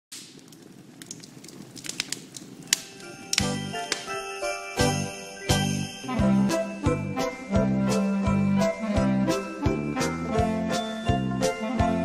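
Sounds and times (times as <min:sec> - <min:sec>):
log fire crackling and popping: 0:00.1 - 0:06.1.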